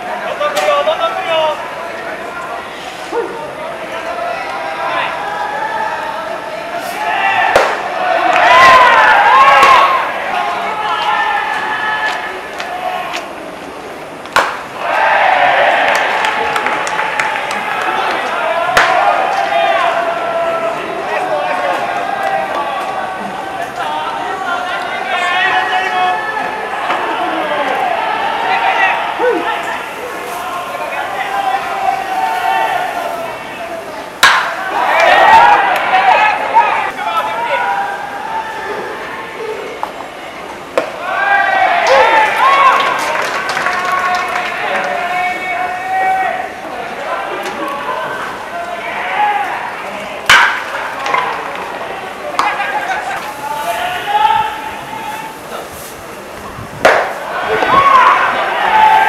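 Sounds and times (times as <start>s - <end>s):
voices calling out: 0.0s - 59.0s
ball smacking into catcher's mitt: 7.5s - 7.8s, 14.3s - 14.6s, 56.8s - 57.7s.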